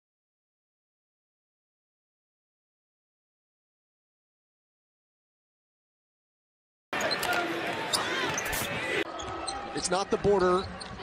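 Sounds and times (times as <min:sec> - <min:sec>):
arena noise: 0:06.9 - 0:11.0.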